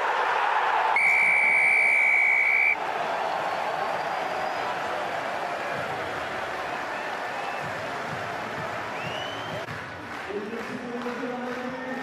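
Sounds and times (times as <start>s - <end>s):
crowd noise: 0.0s - 12.0s
referee's whistle blast: 1.0s - 2.8s.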